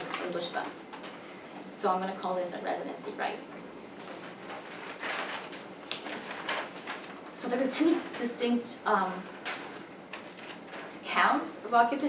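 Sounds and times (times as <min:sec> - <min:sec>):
paper rustling: 0:04.0 - 0:11.5.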